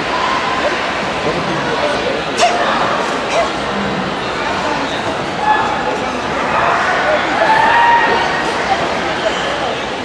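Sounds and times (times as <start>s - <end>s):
chatter of people in a hall: 0.0s - 10.0s.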